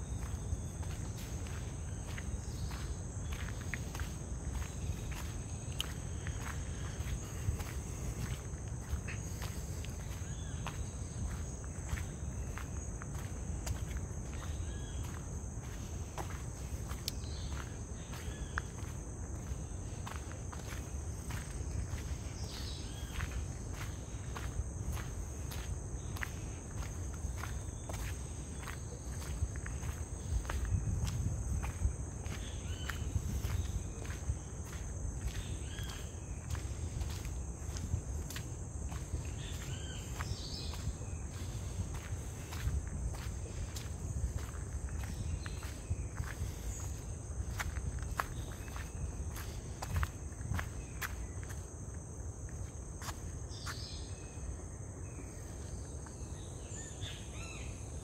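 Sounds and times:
footsteps crunching on gravel: 0.1 - 53.8.

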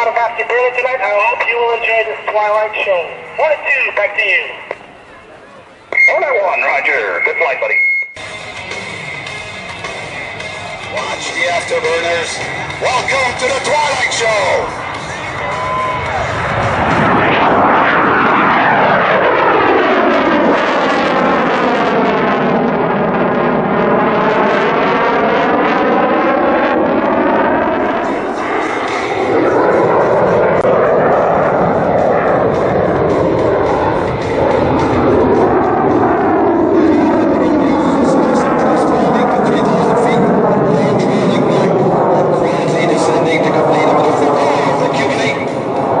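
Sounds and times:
jet engines in afterburner: 0.0 - 46.0.

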